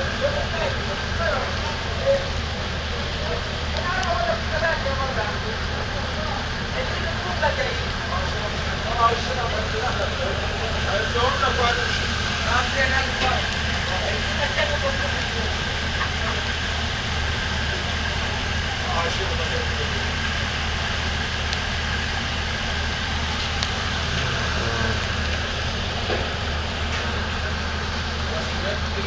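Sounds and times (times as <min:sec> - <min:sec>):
ship engines idling: 0:00.0 - 0:29.0
voices: 0:00.0 - 0:29.0.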